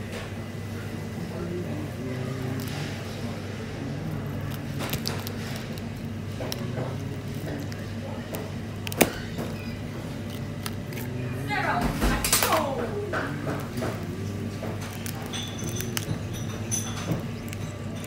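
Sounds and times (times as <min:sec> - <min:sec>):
steady low hum: 0:00.0 - 0:18.0
shell cracking: 0:04.1 - 0:11.2, 0:13.2 - 0:18.0.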